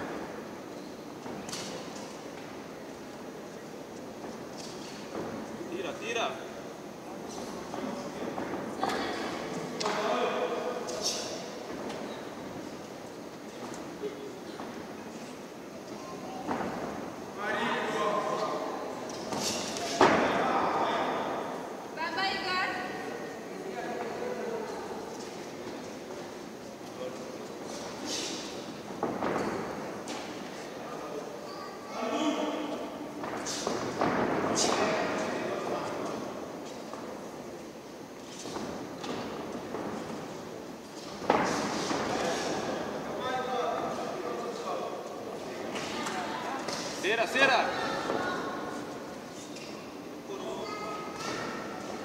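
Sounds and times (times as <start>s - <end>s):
voices shouting in echoing hall: 30.8s - 33.8s, 42.1s - 52.0s.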